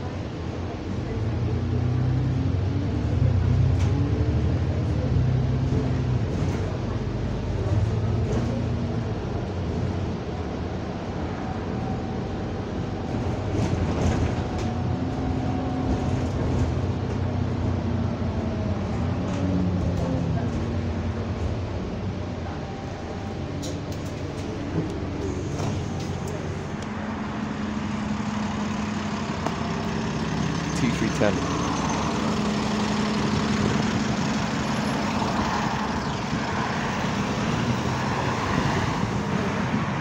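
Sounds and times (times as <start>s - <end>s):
bus engine accelerating: 0.0s - 40.0s.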